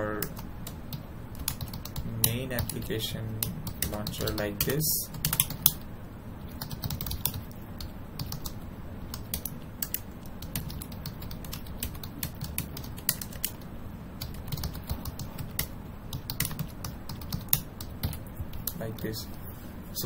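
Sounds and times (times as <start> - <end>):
computer keyboard typing: 0.0 - 5.8, 6.5 - 19.2.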